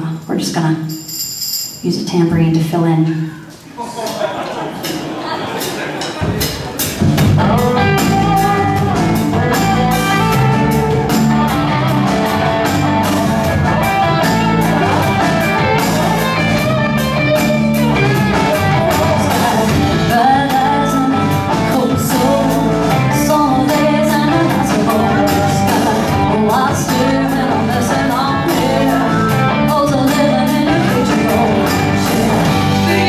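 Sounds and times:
drums: 0.0s - 33.0s
bass: 6.4s - 33.0s
electric guitars: 6.9s - 33.0s.

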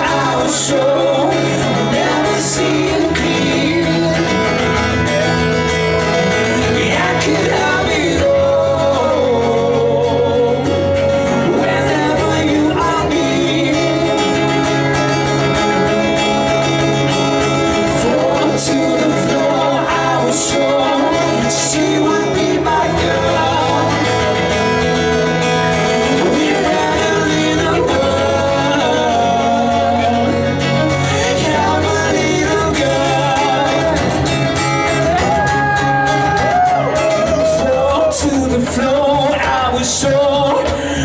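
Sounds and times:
guitar: 0.0s - 41.0s
person singing: 0.0s - 41.0s.

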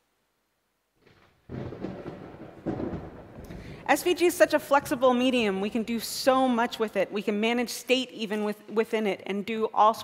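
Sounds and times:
rumbling thunderstorm over speakers: 1.5s - 3.9s.

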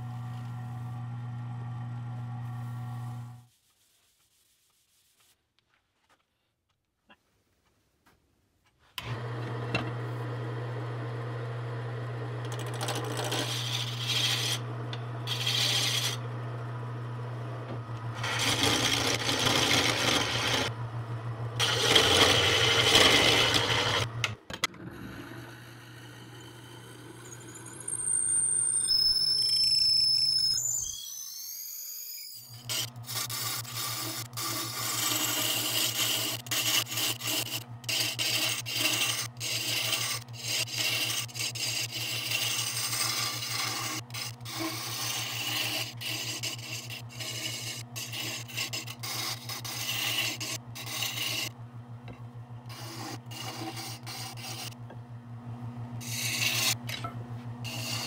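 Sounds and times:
lathe motor hum: 0.0s - 3.4s, 9.0s - 27.7s, 33.7s - 58.0s
chisel scraping spinning wood: 12.3s - 16.4s, 17.2s - 20.8s, 21.6s - 24.4s, 32.6s - 55.0s, 56.0s - 58.0s.

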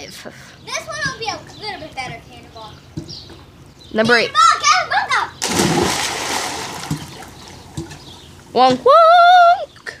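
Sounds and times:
pool water splashing: 4.3s - 9.8s.

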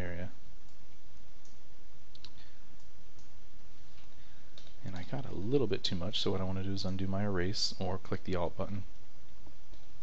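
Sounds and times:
computer mouse clicks: 1.4s - 3.4s.

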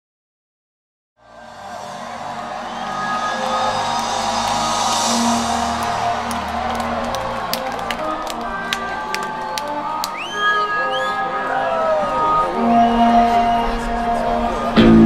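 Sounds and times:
crowd cheering: 1.2s - 15.0s
live music from stage: 1.3s - 15.0s
sharp claps: 3.0s - 10.4s.

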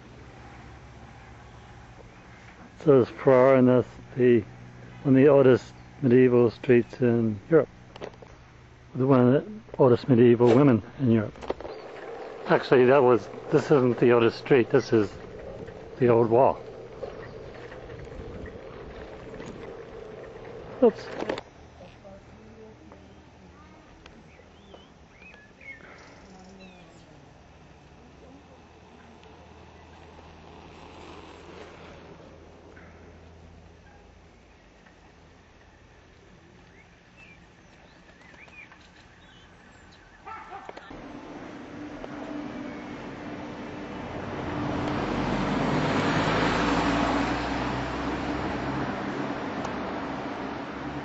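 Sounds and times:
low background hum: 0.0s - 45.8s
small birds chirping: 0.6s - 21.2s, 23.0s - 27.2s, 34.2s - 44.0s
vehicle driving past: 9.6s - 21.4s, 40.9s - 51.0s.

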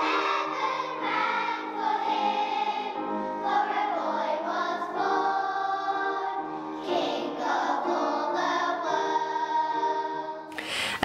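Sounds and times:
choir singing with accompaniment: 0.0s - 10.5s.

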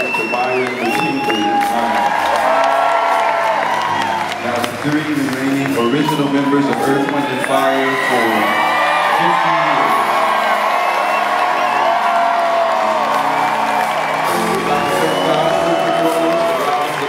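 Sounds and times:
audience cheering and whooping: 0.0s - 17.0s
live band keyboards and bass: 0.0s - 17.0s.

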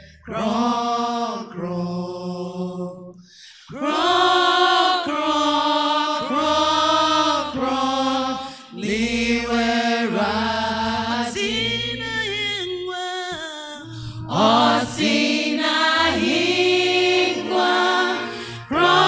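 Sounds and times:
voices singing slow chant: 0.0s - 12.7s, 13.7s - 19.0s
keyboard: 3.8s - 12.9s, 13.8s - 19.0s
bass guitar: 13.8s - 15.2s.

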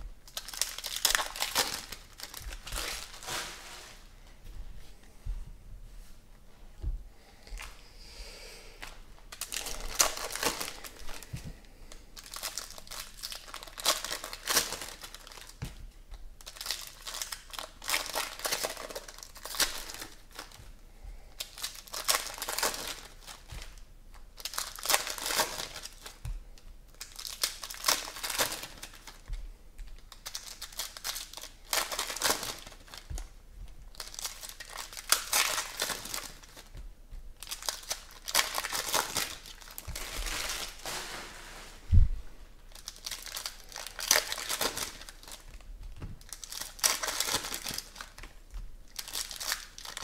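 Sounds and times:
foil wrappers tearing and crinkling: 0.2s - 4.0s, 9.3s - 11.3s, 12.2s - 15.6s, 16.4s - 20.6s, 21.3s - 26.3s, 26.9s - 33.3s, 33.9s - 36.8s, 37.4s - 41.8s, 42.7s - 50.0s.

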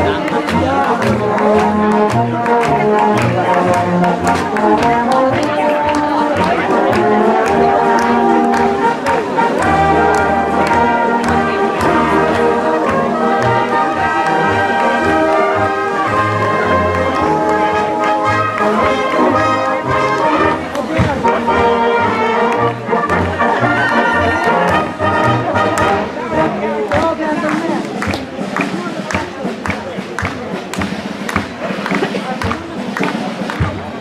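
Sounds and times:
brass band playing dance music: 0.0s - 34.0s
sharp claps: 0.0s - 34.0s.

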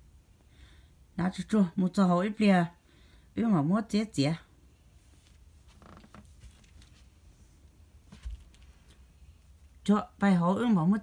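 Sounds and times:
cloth rustling and clicks: 5.1s - 7.2s, 8.0s - 9.0s.

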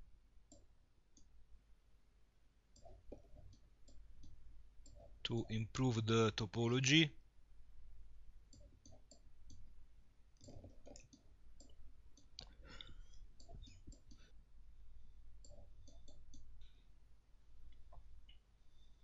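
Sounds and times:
low steady hum: 0.0s - 19.0s
computer mouse clicks: 8.5s - 9.7s, 10.4s - 12.5s, 13.1s - 14.2s, 15.4s - 16.5s.

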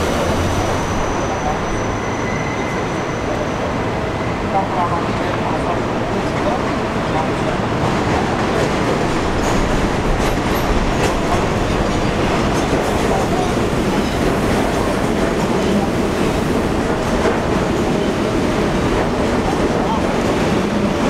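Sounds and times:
elevated train running on steel: 0.0s - 21.0s.

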